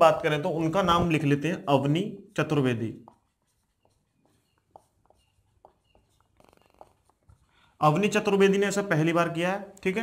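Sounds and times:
man speaking: 0:00.0 - 0:03.1, 0:07.8 - 0:10.0
marker squeaking on whiteboard: 0:02.5 - 0:08.1.

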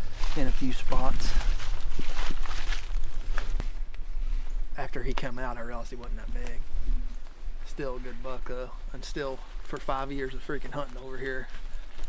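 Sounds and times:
footsteps in dry leaves: 0:00.0 - 0:04.6, 0:07.5 - 0:12.0.

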